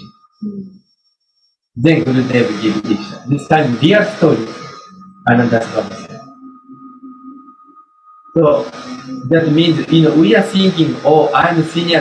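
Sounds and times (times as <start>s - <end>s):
wavering low tone: 0.0s - 0.9s, 1.8s - 12.0s
high-pitched electronic tone: 1.8s - 12.0s.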